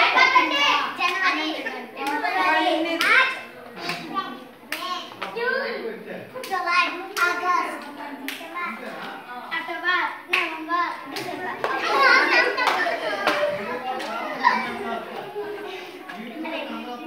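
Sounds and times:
children chanting together: 0.0s - 5.7s, 6.4s - 17.0s
hand slaps: 3.8s - 4.1s.

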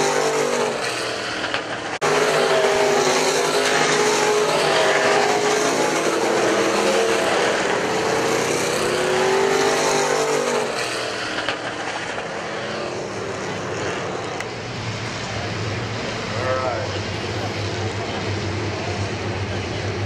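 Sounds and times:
race car engines: 0.0s - 20.0s.

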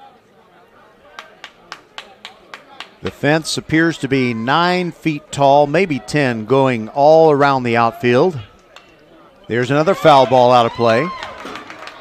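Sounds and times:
faint crowd noise: 0.0s - 12.0s
hands clapping rhythmically: 1.1s - 3.2s, 10.7s - 12.0s.

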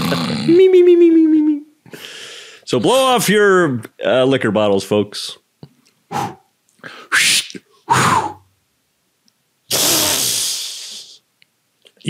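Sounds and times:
compressed air spray hiss: 9.7s - 11.2s.

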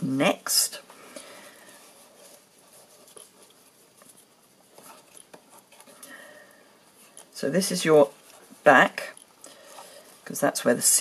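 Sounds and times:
ribbon and box rustling: 0.0s - 11.0s.

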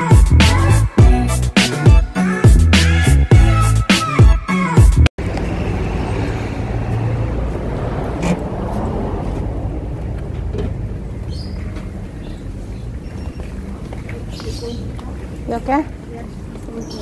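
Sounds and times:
street traffic rumble: 5.2s - 17.0s.

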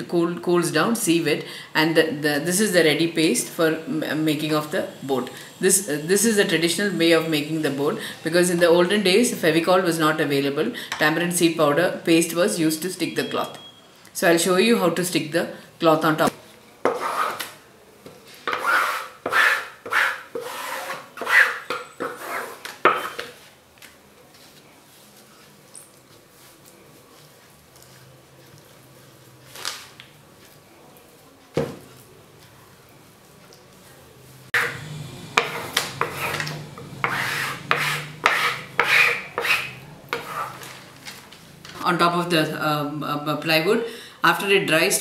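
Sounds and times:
blade scraping across cloth: 34.6s - 40.9s.

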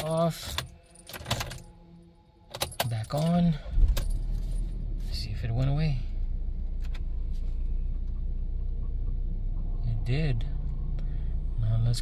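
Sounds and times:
keys jangling: 0.0s - 1.6s
ignition key clicks: 2.5s - 4.3s.

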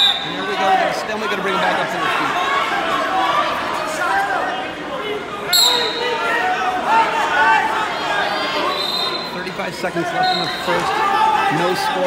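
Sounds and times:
referee's whistle blast: 0.0s - 0.6s, 5.5s - 6.2s, 8.6s - 9.4s, 10.2s - 10.8s
people talking and calling out: 0.0s - 12.0s.

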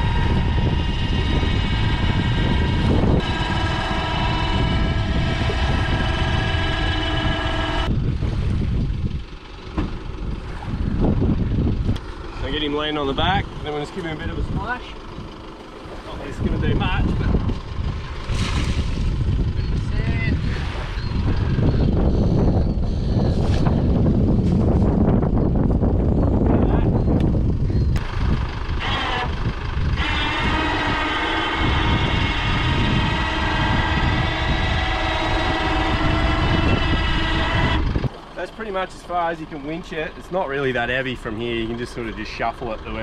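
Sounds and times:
low rushing noise: 0.0s - 9.4s
wind on microphone: 0.0s - 9.4s, 10.1s - 12.5s, 16.2s - 38.2s
electric winch motor whining: 0.0s - 14.2s, 25.2s - 40.9s.

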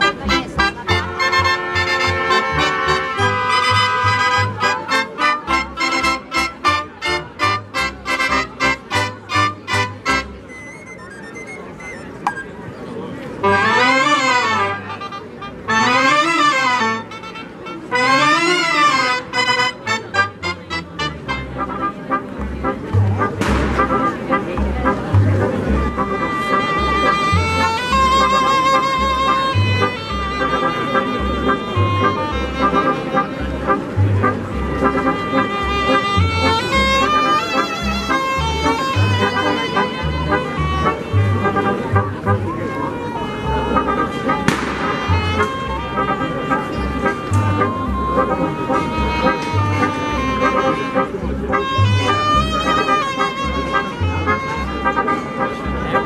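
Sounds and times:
reed and brass band playing outdoors: 0.0s - 12.6s, 13.2s - 56.0s
double bass pulse: 20.2s - 42.6s, 43.4s - 54.9s.

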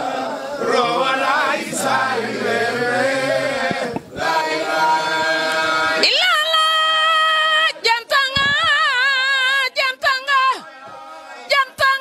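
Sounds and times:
men chanting: 0.0s - 6.3s, 9.6s - 12.0s.

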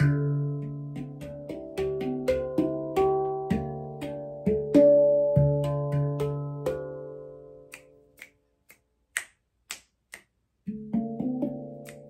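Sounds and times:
handpan notes ringing: 0.0s - 7.7s, 10.7s - 12.0s
finger snaps: 7.6s - 10.6s, 11.7s - 12.0s.

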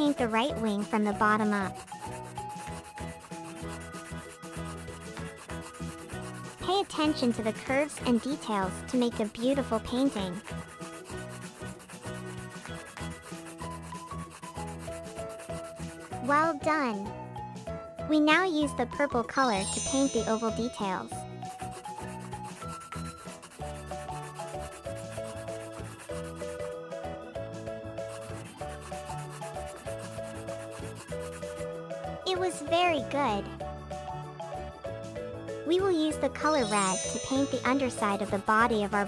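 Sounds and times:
scratchy rubbing strokes: 0.0s - 16.4s, 19.6s - 26.9s, 27.8s - 33.2s, 36.4s - 39.0s
soft background music: 0.0s - 39.0s.

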